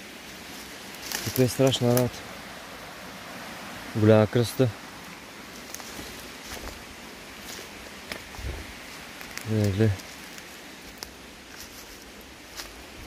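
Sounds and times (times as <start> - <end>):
footsteps through dry leaves: 0.2 - 2.2, 4.9 - 13.0.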